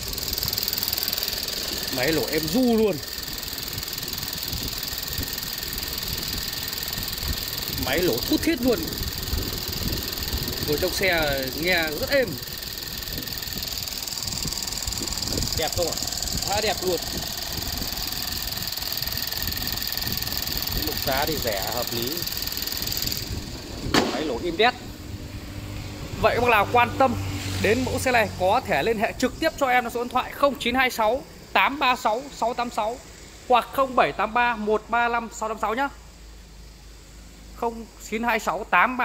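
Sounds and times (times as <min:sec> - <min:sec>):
car engine idling: 0:00.0 - 0:27.0
car bonnet shutting with bang: 0:23.9 - 0:24.4.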